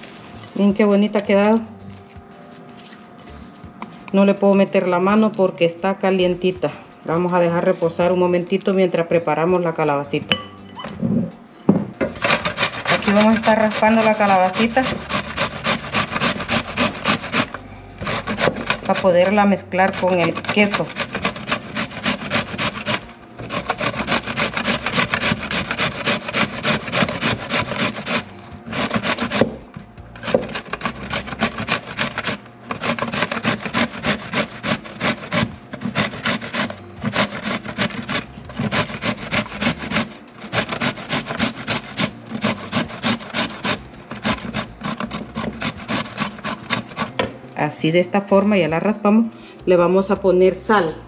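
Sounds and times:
vegetable grating on metal grater: 12.1s - 47.3s.

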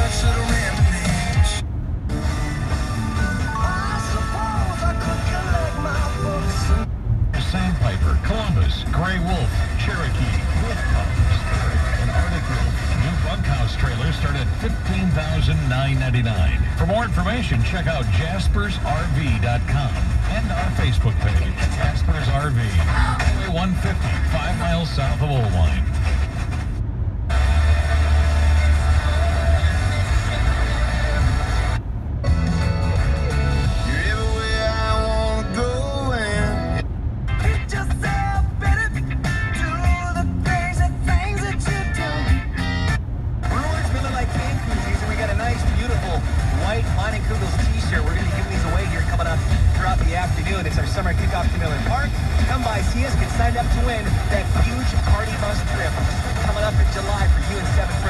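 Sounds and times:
car radio music and talk: 0.0s - 32.1s, 32.7s - 58.0s.

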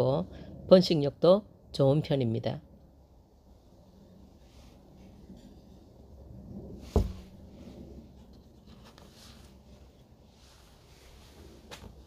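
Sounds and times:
low background rumble: 0.0s - 12.0s
faint scratchy rustling: 6.8s - 12.0s
dull thump: 6.9s - 7.3s.

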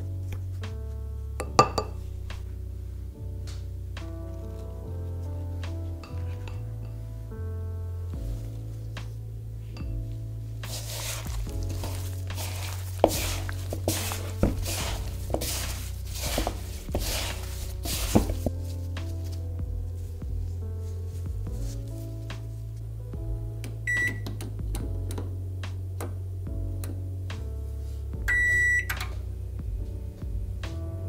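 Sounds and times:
background music with low bass: 0.0s - 31.0s
chicken wings rustling in bowl: 10.6s - 19.4s
oven control panel beep: 23.9s - 24.2s, 28.3s - 29.0s.

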